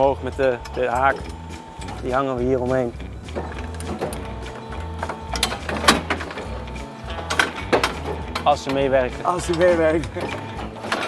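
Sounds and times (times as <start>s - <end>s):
winch motor whirring: 0.0s - 11.0s.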